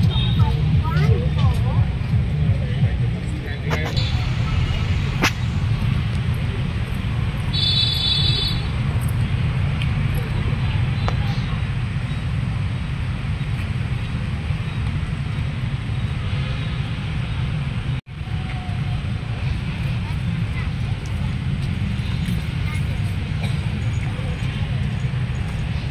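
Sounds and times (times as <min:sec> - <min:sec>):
steady low rumble: 0:00.0 - 0:25.9.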